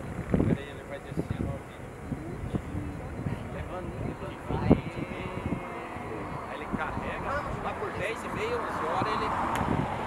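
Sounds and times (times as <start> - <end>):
people talking indistinctly: 0.4 - 9.5.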